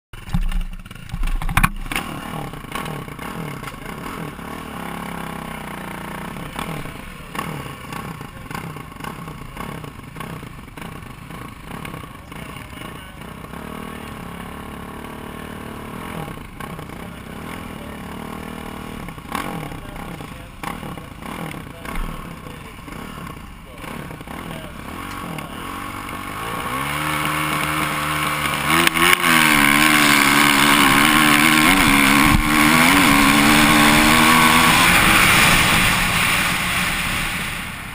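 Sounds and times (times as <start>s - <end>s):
motocross bike revving: 0.2s - 37.9s.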